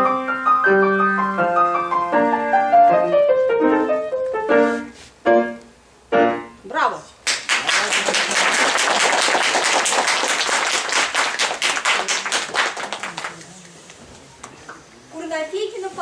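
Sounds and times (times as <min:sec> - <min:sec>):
piano piece: 0:00.0 - 0:06.8
audience applauding: 0:07.2 - 0:14.0.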